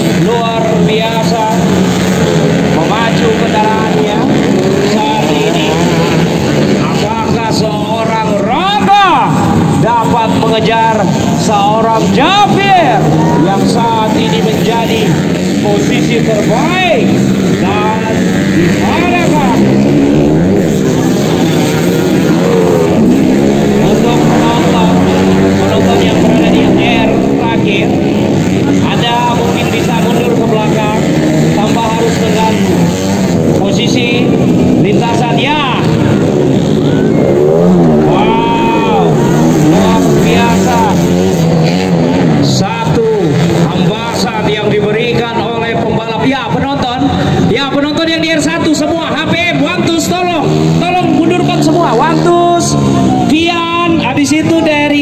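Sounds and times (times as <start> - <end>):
crowd voices: 0.0 - 55.0
dirt bike engines revving: 0.0 - 55.0.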